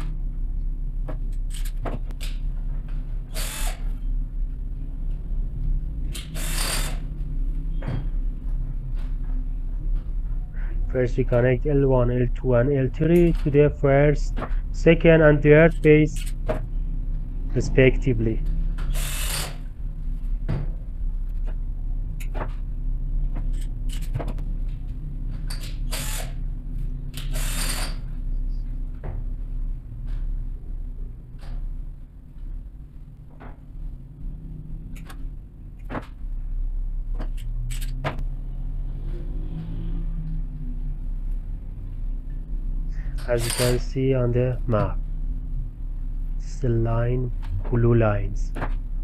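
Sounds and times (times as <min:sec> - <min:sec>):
steady low hum: 0:00.0 - 0:49.0
screwdriver scraping and rattling wires: 0:01.3 - 0:02.4, 0:23.4 - 0:24.3, 0:37.2 - 0:38.0, 0:43.2 - 0:43.9
cordless drill-driver whirring: 0:03.3 - 0:03.8, 0:06.4 - 0:07.0, 0:18.9 - 0:19.6, 0:25.9 - 0:26.4, 0:27.2 - 0:27.9.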